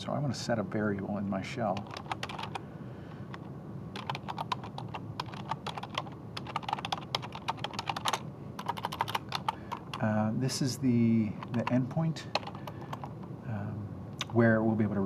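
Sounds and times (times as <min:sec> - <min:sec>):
typing on computer keyboard: 0:01.7 - 0:02.6, 0:03.3 - 0:10.1, 0:11.4 - 0:13.3.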